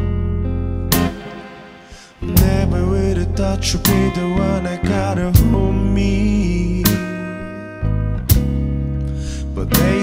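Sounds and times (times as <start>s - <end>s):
band playing soul ballad: 0.0s - 10.0s
percussion hit: 0.9s - 2.7s.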